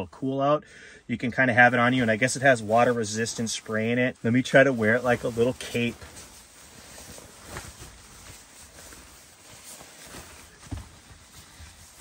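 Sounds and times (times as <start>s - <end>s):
nylon blanket rustling: 1.1s - 12.0s.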